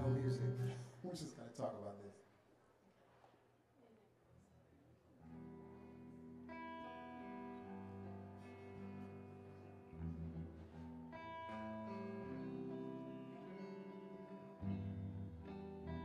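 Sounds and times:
bass notes: 0.0s - 0.9s, 7.6s - 13.3s
guitar playing slow chords: 0.0s - 1.0s, 5.2s - 16.0s.

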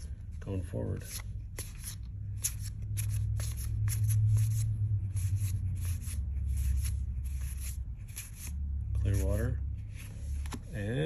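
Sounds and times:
low steady hum: 0.0s - 11.0s
cards swiping: 1.0s - 9.4s.

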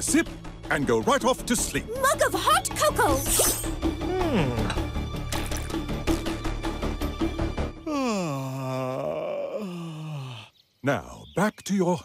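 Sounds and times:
man's deep groaning yawn: 4.0s - 4.7s, 7.8s - 10.5s.

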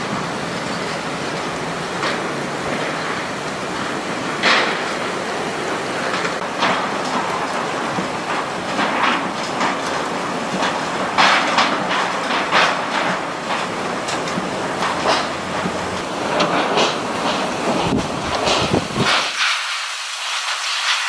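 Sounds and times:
heavy rain: 0.0s - 21.0s
hurricane wind gusts: 0.0s - 21.0s.

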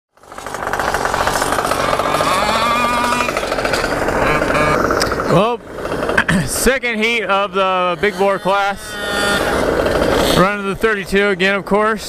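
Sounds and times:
two-stroke scooter engines running: 0.1s - 12.0s.

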